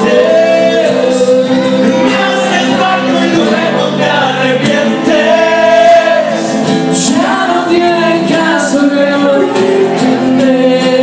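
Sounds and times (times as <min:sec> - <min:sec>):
acoustic guitar: 0:00.0 - 0:11.0
man singing into microphone: 0:00.0 - 0:11.0.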